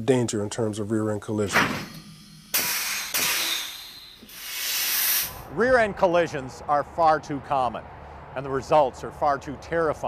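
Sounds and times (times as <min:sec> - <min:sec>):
whoosh rushing hiss: 0:01.6 - 0:05.5.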